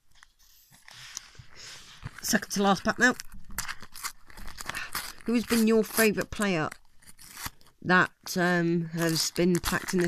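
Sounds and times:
foil packet crinkling and ripping: 2.0 - 10.0.

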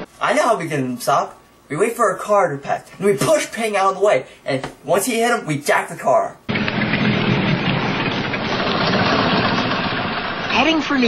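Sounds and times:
truck engine running: 6.5 - 10.8.

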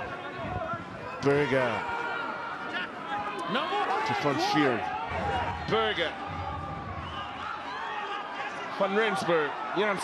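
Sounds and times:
stadium noise: 0.0 - 10.0.

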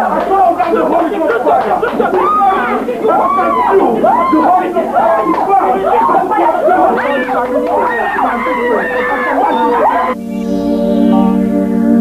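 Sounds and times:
people talking and calling out: 0.0 - 11.5.

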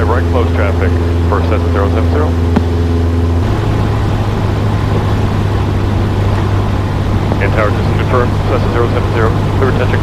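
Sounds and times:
airplane engine and propeller droning: 0.0 - 10.0.

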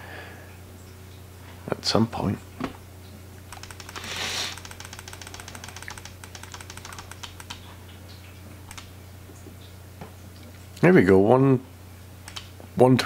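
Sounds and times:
steady low hum: 0.0 - 13.0
keyboard or mouse clicks: 3.5 - 7.6, 12.2 - 12.5
short breathy hiss: 4.0 - 4.6.

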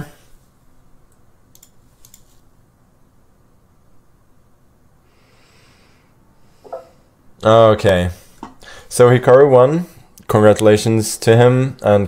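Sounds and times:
light computer clicks: 1.1 - 2.4.

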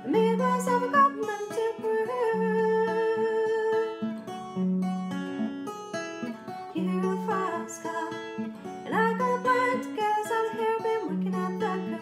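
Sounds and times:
woman singing: 0.0 - 4.2, 6.2 - 12.0
acoustic guitar plucking: 0.0 - 12.0.

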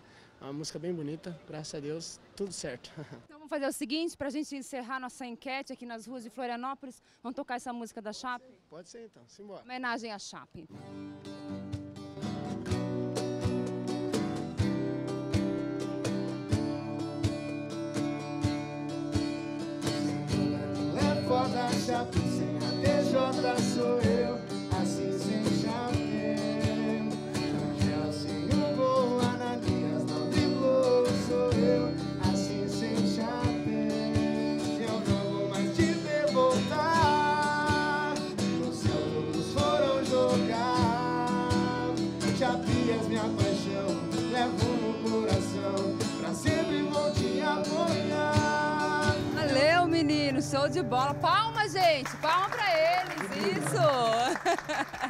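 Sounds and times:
strummed acoustic guitar: 10.7 - 51.4
cajon drum: 11.6 - 50.6
man singing: 20.1 - 49.6.

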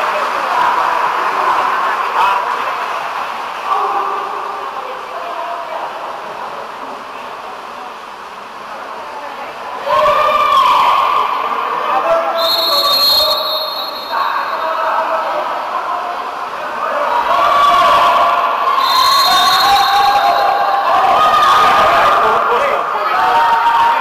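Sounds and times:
referee whistle blasts: 12.4 - 14.8, 18.8 - 20.8
people shouting: 17.0 - 22.4.

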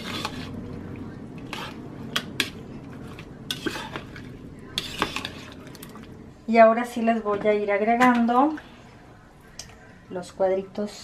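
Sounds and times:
metal spatula scraping a bowl: 0.0 - 0.6, 1.4 - 5.8.

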